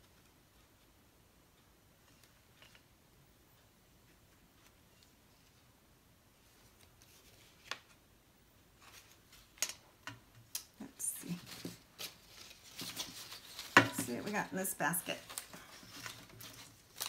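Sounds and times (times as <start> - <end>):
paper rustling: 11.2 - 17.0
plastic basket set down: 13.6 - 14.3.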